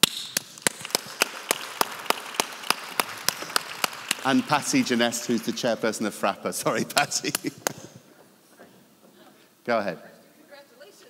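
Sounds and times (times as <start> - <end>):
close hand claps: 0.0 - 6.1, 6.8 - 8.0
audience applause: 0.4 - 7.9.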